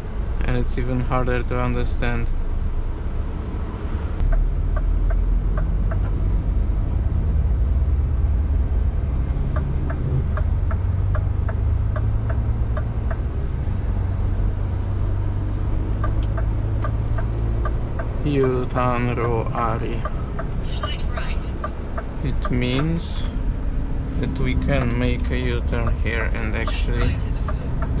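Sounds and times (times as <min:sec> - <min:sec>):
truck diesel engine rumble: 0:00.0 - 0:28.0
turn-signal indicator ticking: 0:04.2 - 0:06.2, 0:09.0 - 0:28.0.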